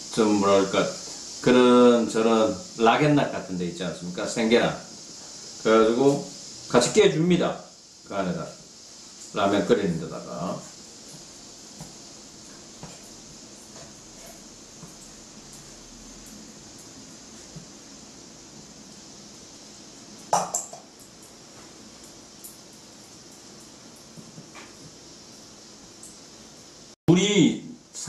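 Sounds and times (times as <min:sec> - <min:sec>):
steady low hiss: 0:00.0 - 0:28.0.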